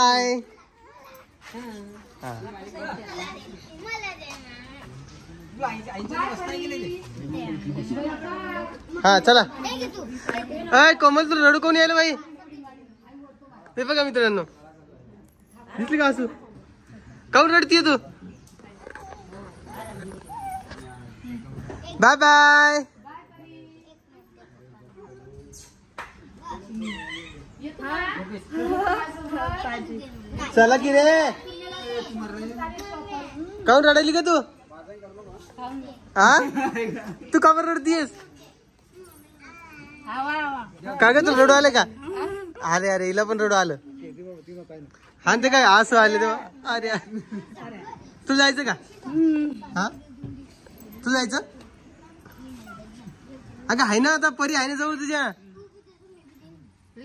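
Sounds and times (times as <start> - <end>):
quiet voices: 18.0 - 22.0
child's voice: 38.4 - 40.1.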